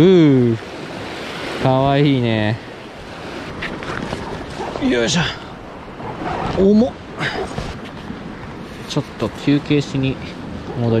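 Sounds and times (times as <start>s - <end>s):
sea waves washing: 0.0s - 11.0s
wind on microphone: 2.9s - 11.0s.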